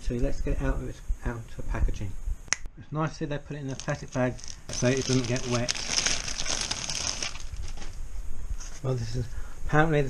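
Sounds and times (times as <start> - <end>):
man speaking: 2.8 - 5.8
plastic bag crinkling: 3.7 - 8.0.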